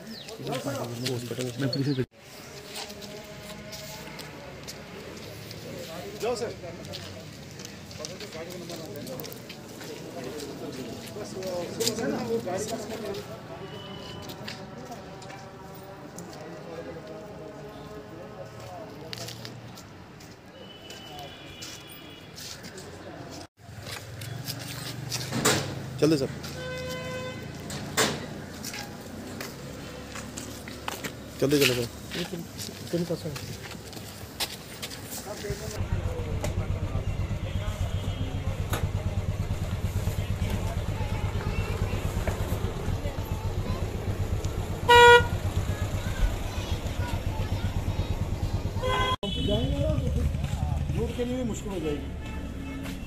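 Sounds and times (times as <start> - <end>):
outdoor background noise: 0.0 - 53.0
street noise: 0.0 - 53.0
car horn toot: 13.6 - 14.4, 20.6 - 22.4, 26.4 - 27.7, 37.0 - 38.9, 44.8 - 45.5, 48.8 - 50.0, 52.1 - 53.0
people talking: 31.4 - 33.6, 35.1 - 52.1
faint distant voices: 35.2 - 51.0.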